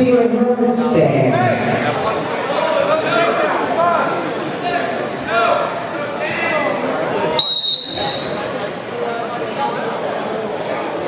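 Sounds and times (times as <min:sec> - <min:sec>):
voices in a gym: 0:00.0 - 0:11.0
referee's whistle: 0:07.4 - 0:08.4.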